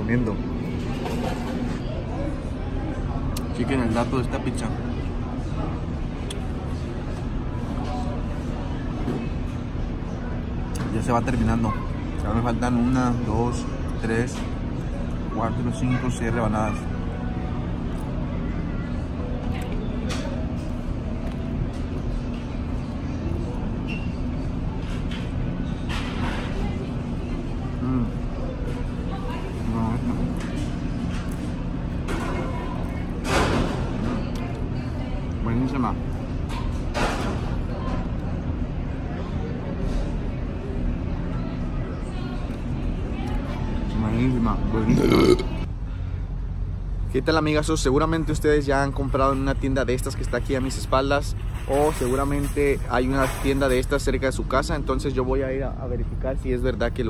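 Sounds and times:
restaurant room hum: 0.0s - 57.0s
indistinct voices: 44.6s - 45.7s
man burping: 44.8s - 45.7s.

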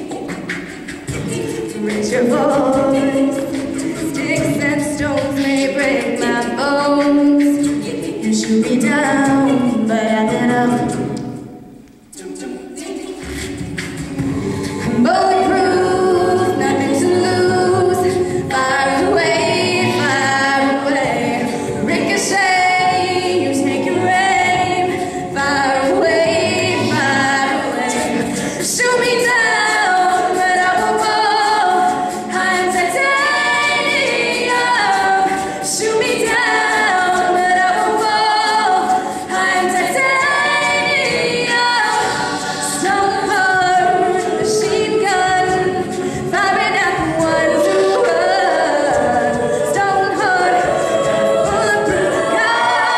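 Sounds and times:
a cappella group singing: 0.0s - 52.9s
beatboxed vocal percussion: 0.0s - 52.9s.

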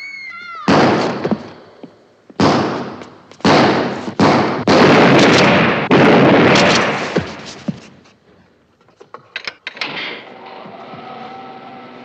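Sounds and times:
echoing gunshots: 0.6s - 1.8s, 2.4s - 7.7s.

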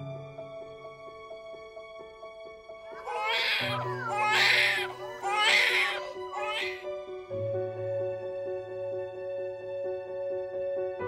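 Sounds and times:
background music: 0.0s - 11.0s
newborn baby crying: 2.9s - 6.9s.

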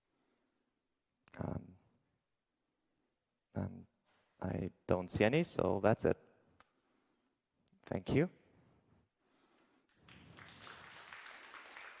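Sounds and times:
faint audience applause: 9.9s - 12.0s.

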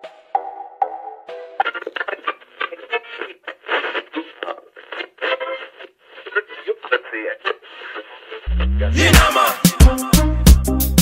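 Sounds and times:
music through radio speaker: 1.3s - 11.0s
voice through radio speaker: 1.6s - 9.3s.

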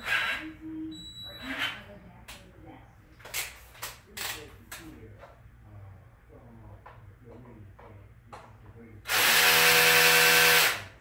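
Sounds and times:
cordless drill running: 9.1s - 10.9s.

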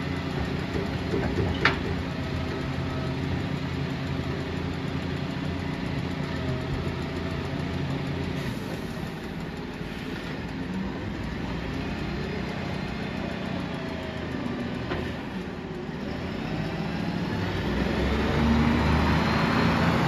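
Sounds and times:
garbage truck engine running: 0.0s - 20.0s.

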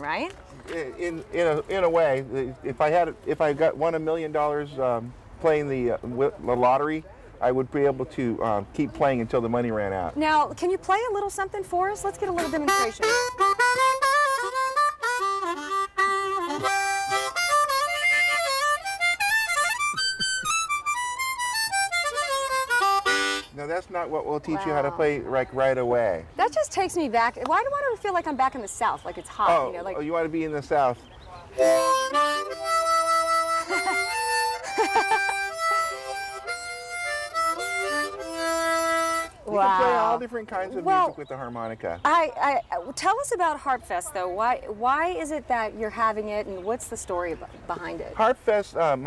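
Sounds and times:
solo harmonica: 12.2s - 23.6s, 31.6s - 40.1s.

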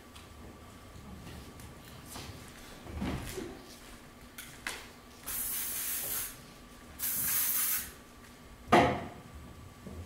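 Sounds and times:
aerosol spray hissing: 5.3s - 6.4s, 7.0s - 8.0s.

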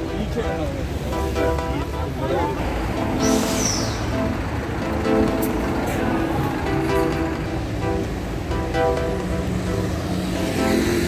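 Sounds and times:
background music: 0.0s - 11.0s
road traffic passing: 0.0s - 11.0s
sharp hiss falling in pitch: 3.2s - 4.3s.

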